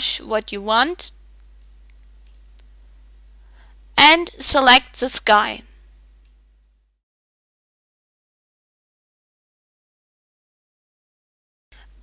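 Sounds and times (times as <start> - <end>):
low room hum: 0.0 - 7.0, 11.8 - 12.0
computer mouse clicks: 1.4 - 2.7.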